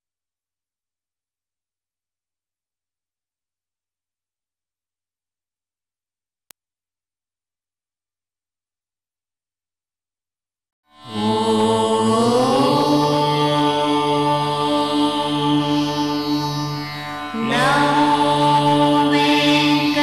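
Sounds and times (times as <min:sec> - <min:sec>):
chanted voice: 0:11.1 - 0:20.0
steady drone: 0:11.1 - 0:20.0.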